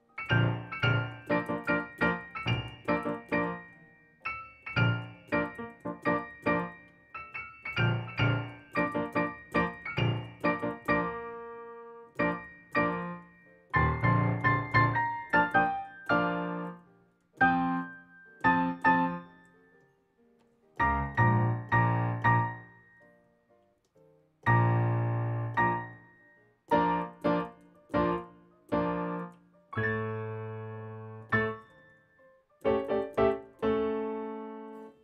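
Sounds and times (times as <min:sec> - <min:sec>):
solo classical piano: 0:00.0 - 0:23.6, 0:24.4 - 0:35.0.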